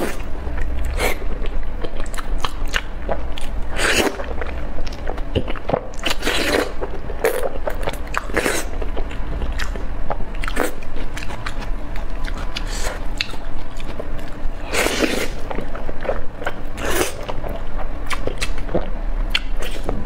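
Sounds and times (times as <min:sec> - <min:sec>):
wet chewing and biting: 0:00.0 - 0:20.0.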